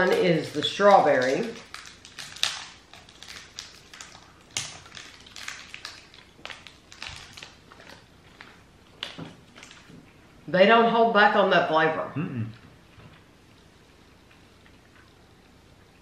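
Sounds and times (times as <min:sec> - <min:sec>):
candy wrappers crinkling: 0:00.0 - 0:10.0.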